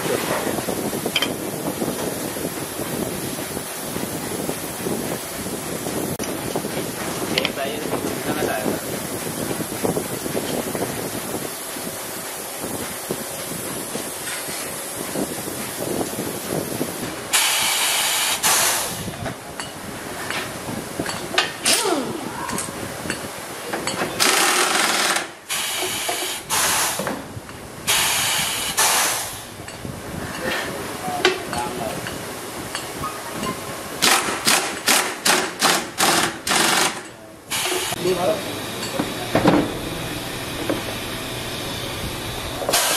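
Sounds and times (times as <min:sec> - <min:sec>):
factory machinery noise: 0:00.0 - 0:42.9
workshop background noise: 0:00.0 - 0:42.9
compressed air hiss: 0:16.3 - 0:19.2, 0:25.4 - 0:27.2, 0:27.9 - 0:29.6, 0:42.7 - 0:42.9
impact wrench rattling bursts: 0:24.2 - 0:25.8, 0:34.0 - 0:37.8.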